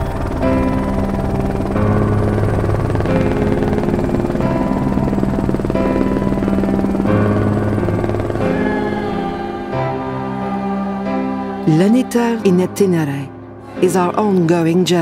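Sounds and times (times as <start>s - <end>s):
sustained chords over bass: 0.0s - 15.0s.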